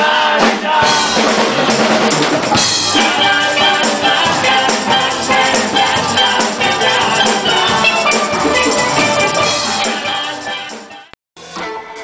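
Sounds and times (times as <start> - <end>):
steel band playing: 0.8 - 12.0.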